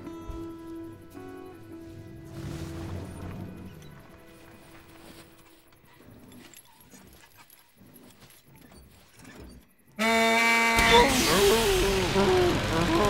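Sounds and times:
soft film music: 0.0s - 7.8s.

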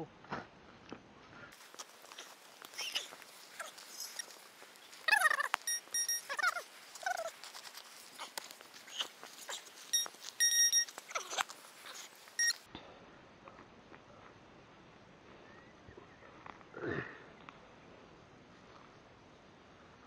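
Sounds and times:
soil scraping and crumbling: 1.5s - 12.7s
metal detector beeps: 5.1s - 6.6s, 9.8s - 11.4s, 12.4s - 12.7s.

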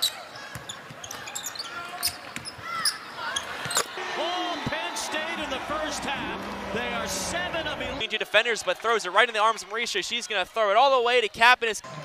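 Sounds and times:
shoe squeaks: 0.0s - 4.0s.

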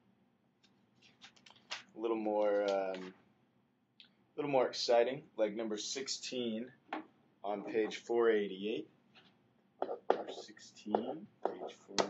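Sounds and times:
soft half-whispered speech: 7.5s - 8.1s, 9.8s - 12.0s.

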